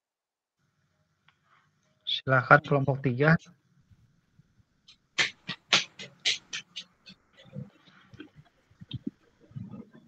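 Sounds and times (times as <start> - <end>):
animal making sharp calls: 5.2 - 7.6.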